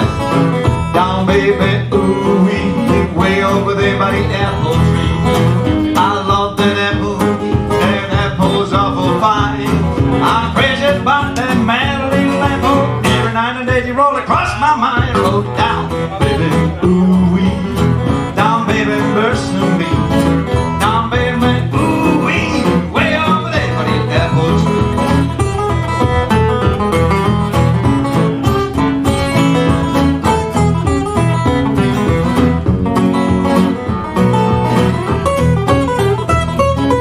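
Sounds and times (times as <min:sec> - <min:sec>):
blues guitars playing: 0:00.0 - 0:37.0.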